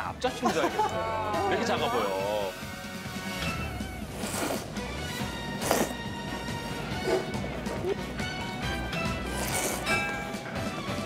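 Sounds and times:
background music: 0.0 - 11.0
noodles being slurped: 4.0 - 6.1, 9.1 - 9.9.

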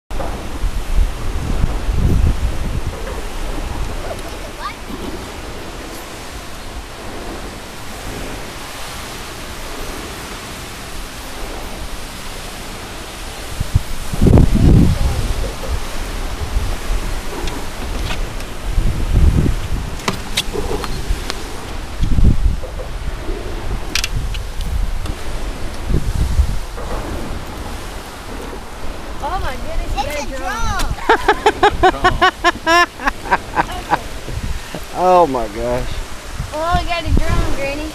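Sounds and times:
wind buffeting microphone: 0.1 - 37.9.

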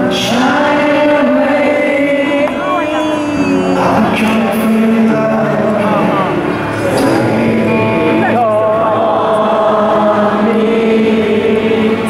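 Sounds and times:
acoustic guitar: 0.0 - 12.0
piano: 0.0 - 12.0
voices singing along: 0.0 - 12.0.

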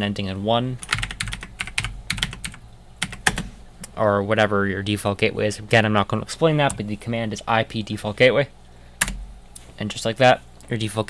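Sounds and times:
computer keyboard typing: 0.8 - 3.5, 9.0 - 9.2.

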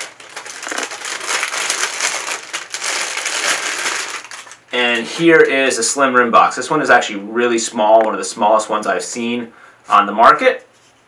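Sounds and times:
plastic wrapping crinkling: 0.0 - 5.6.

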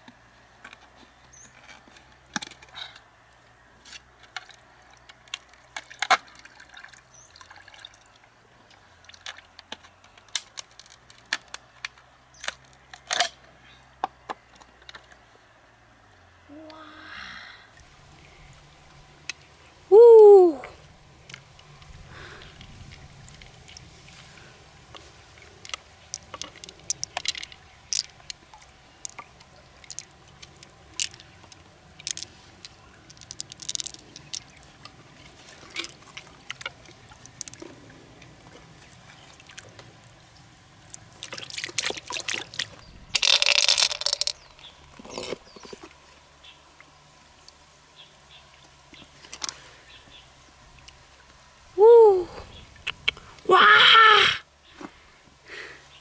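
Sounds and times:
river water splashing and dripping: 0.0 - 56.0.

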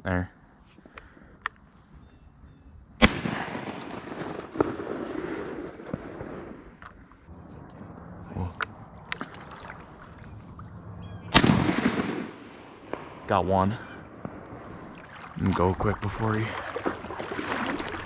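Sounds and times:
shotgun shots with echo: 3.0 - 6.5, 11.3 - 13.3.

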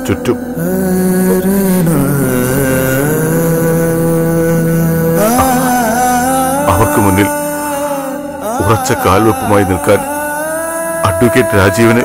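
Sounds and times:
sustained held chord: 0.0 - 12.0.

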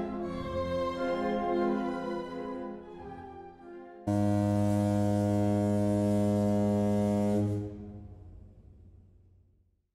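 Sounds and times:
deep ship's horn blast: 4.1 - 8.8.

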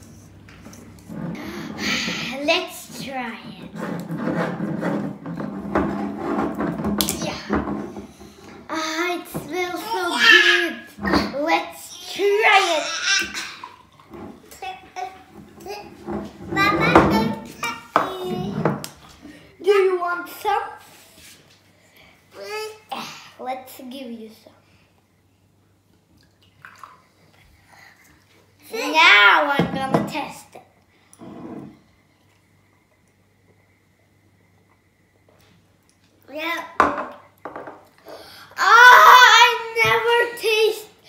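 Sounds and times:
young children babbling: 9.8 - 10.8.

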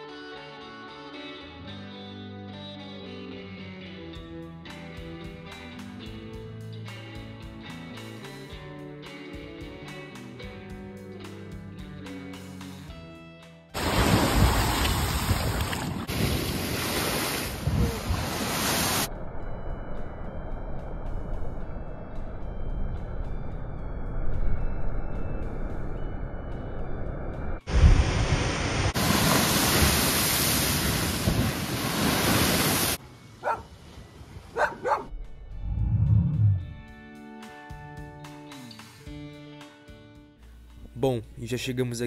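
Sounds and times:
waves breaking against a seawall: 13.8 - 19.1, 27.7 - 33.0
wind on microphone: 13.9 - 28.6.

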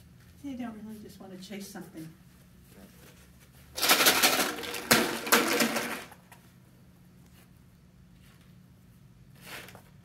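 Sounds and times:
plastic bottle crinkling: 3.8 - 6.2.

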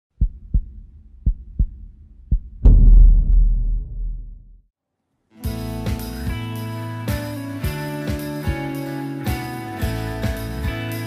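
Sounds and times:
synthesized heartbeat thumps: 0.2 - 4.7
deep boom: 2.5 - 4.7.

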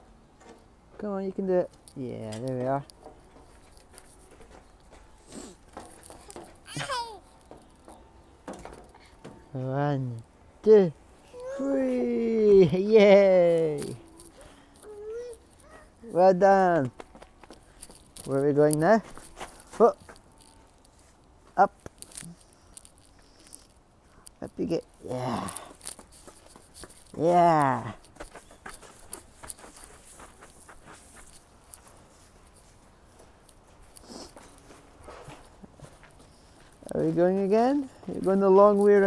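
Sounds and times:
dry leaves and grit rustling: 1.0 - 8.4, 11.2 - 39.0
toddler babbling: 6.2 - 7.3, 11.3 - 12.0, 14.8 - 16.0.

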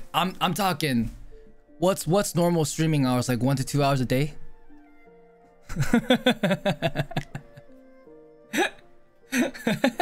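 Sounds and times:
soft background music: 0.0 - 10.0
man laughing: 5.7 - 7.7, 8.6 - 10.0.

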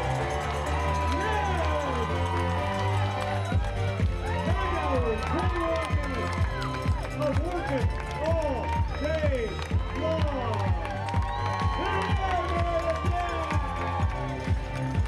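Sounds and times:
steady bass: 0.0 - 15.0.

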